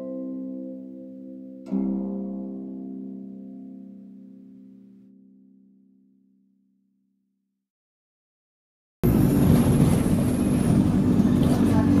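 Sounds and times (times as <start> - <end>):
engine and road noise in cabin: 9.0 - 12.0.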